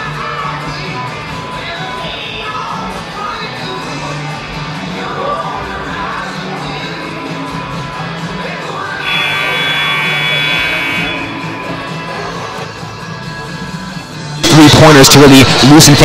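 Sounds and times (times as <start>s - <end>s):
background music: 0.0s - 16.0s
scoreboard horn: 9.0s - 12.1s.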